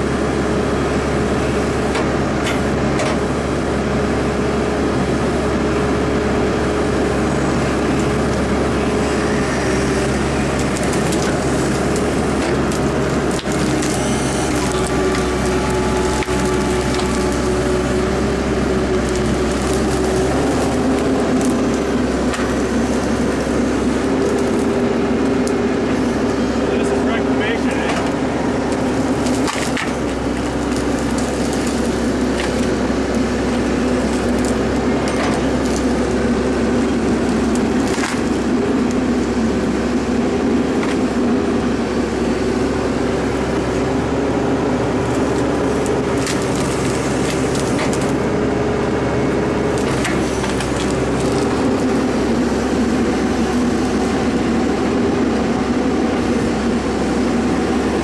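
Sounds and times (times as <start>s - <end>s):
excavator engine and hydraulics: 0.0s - 58.0s
wood cracking and snapping: 10.4s - 25.9s, 27.9s - 39.1s, 44.4s - 48.4s, 49.6s - 52.3s.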